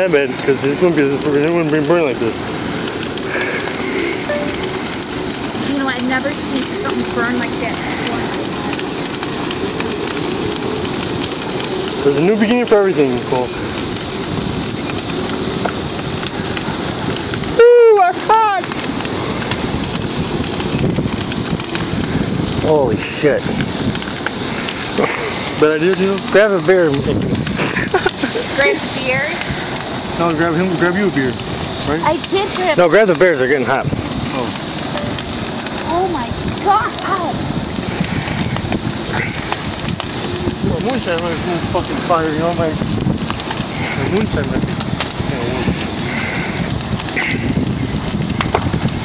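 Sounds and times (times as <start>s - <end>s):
bonfire crackling and popping: 0.0s - 49.0s
person crying out: 17.6s - 18.0s.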